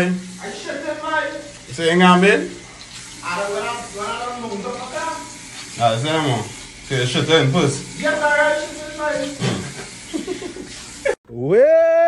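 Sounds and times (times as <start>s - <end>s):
steady hiss: 0.0s - 11.2s.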